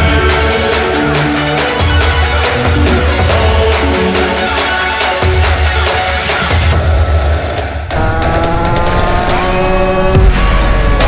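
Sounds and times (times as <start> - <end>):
background music with low beat: 0.0 - 11.0
two-stroke engine revving: 7.9 - 11.0.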